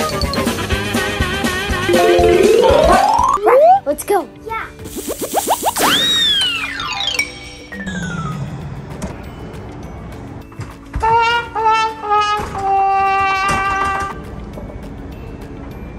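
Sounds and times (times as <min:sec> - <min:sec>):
background music: 0:01.8 - 0:04.4
falling pitch glides: 0:01.9 - 0:03.4.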